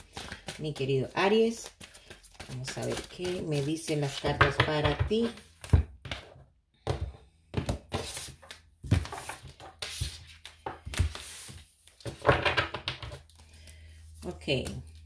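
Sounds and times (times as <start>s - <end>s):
cards shuffling and slapping: 0.0s - 4.9s, 7.6s - 15.0s.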